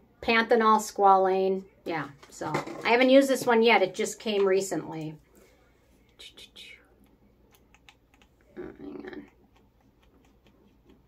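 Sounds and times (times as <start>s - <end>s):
woman speaking: 0.2s - 5.2s, 6.2s - 6.9s, 8.5s - 9.4s.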